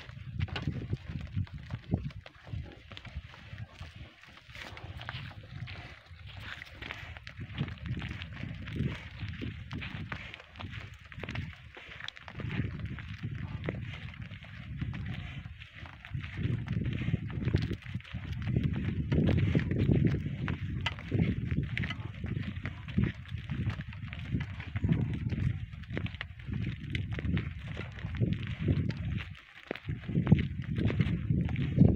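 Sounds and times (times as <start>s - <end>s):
hooves clopping on dirt: 0.0s - 31.9s.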